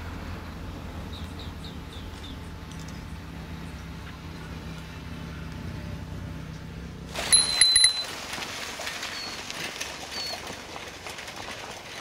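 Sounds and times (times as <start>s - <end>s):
low steady rumble: 0.0s - 12.0s
bicycle bell ringing: 7.3s - 8.1s.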